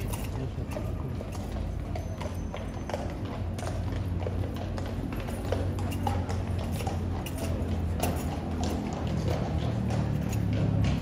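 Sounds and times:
horse hooves clip-clopping: 0.0 - 11.0.

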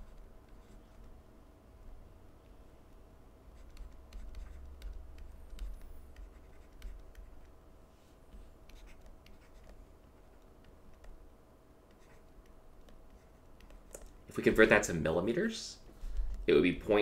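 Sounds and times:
faint steady hum: 0.0 - 17.0
stylus tapping on tablet: 3.6 - 7.6.

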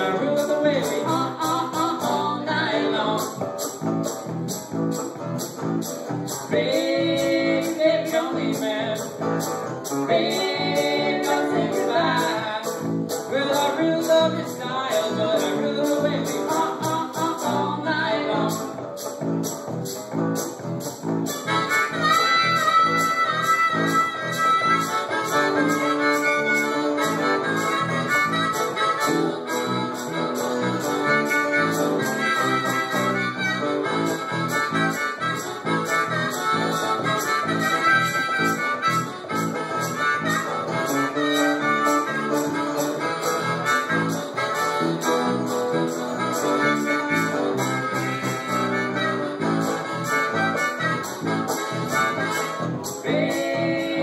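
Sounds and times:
harmonica solo: 0.0 - 54.0
strummed acoustic guitar: 0.0 - 54.0.

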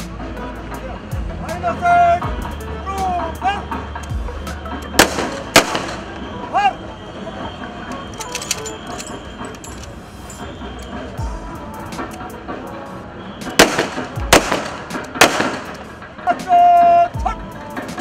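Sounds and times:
crowd noise: 0.0 - 18.0
music: 0.0 - 18.0
rifle shots cracking: 5.0 - 6.0, 13.6 - 15.9.

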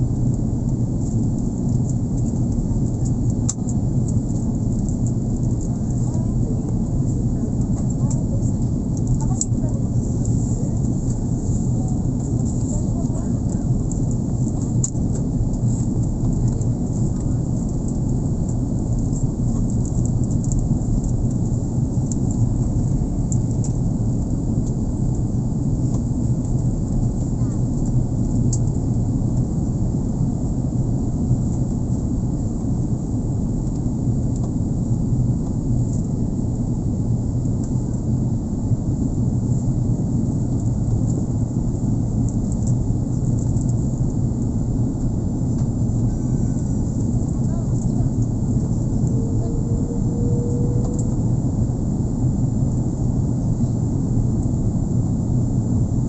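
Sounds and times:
jet engines rumbling in cabin: 0.0 - 56.0.

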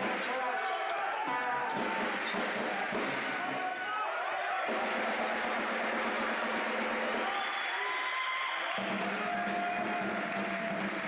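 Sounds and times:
voices echoing in gym: 0.0 - 1.9, 2.8 - 4.7.

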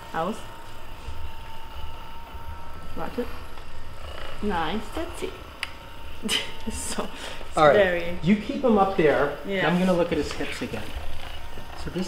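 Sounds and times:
massage gun buzzing: 0.0 - 12.0.

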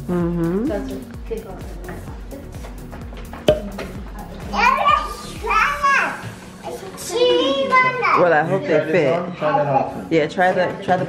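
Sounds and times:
background music with steady beat: 0.0 - 7.0.

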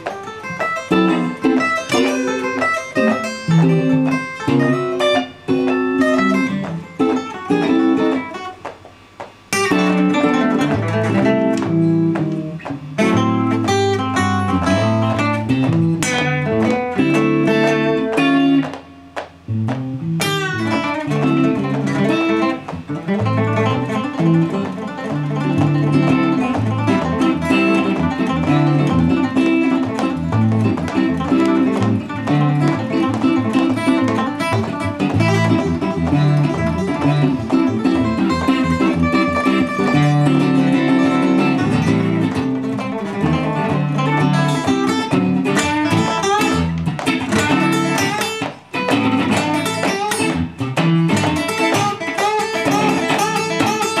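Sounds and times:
acoustic guitar: 0.0 - 54.0
electric guitar: 0.0 - 54.0.

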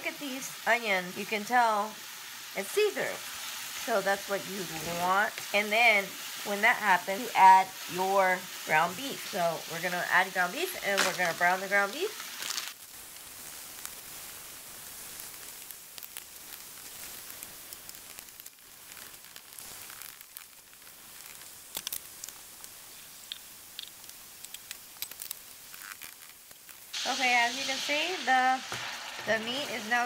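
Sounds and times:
meat sizzling in a skillet: 0.0 - 30.0.

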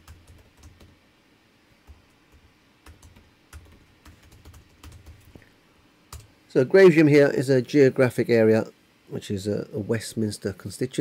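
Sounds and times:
typing on keyboard: 0.0 - 1.0, 1.8 - 5.4, 6.1 - 6.3.

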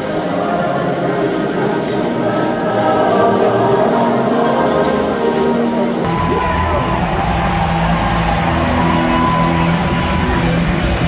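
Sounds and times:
choir singing long held notes: 0.0 - 6.1.

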